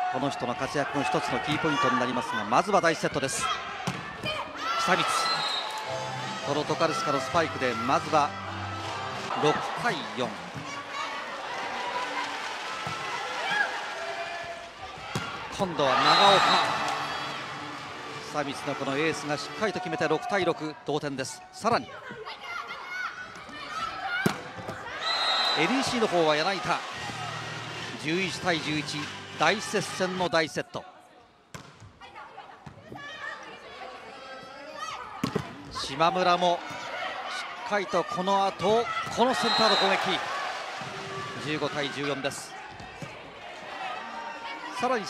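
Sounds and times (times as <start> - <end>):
crowd calling and cheering: 0.0 - 30.4, 33.0 - 45.0.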